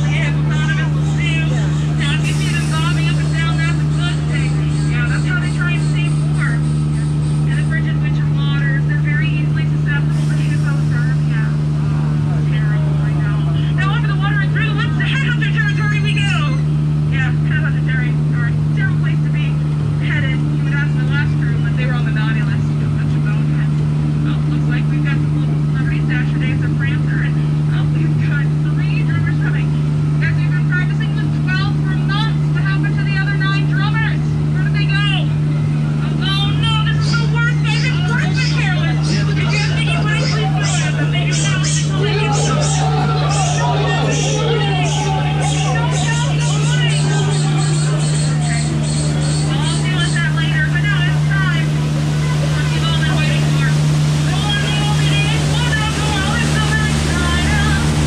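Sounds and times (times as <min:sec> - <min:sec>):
boat motor humming: 0:00.0 - 0:58.0
water noise: 0:31.4 - 0:58.0.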